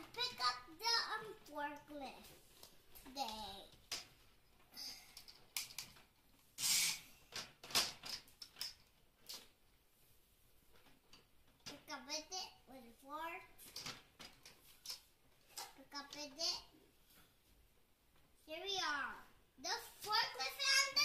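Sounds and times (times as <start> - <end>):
young child's voice: 0.0 - 2.4, 3.0 - 3.8, 11.7 - 13.6, 15.5 - 16.8, 18.5 - 21.0
hard plastic toy clicks and knocks: 5.2 - 6.0.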